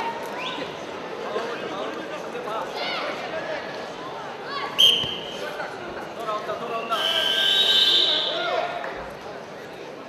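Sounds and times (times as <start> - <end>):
referee's whistle blasts: 4.8 - 5.4, 6.8 - 8.4.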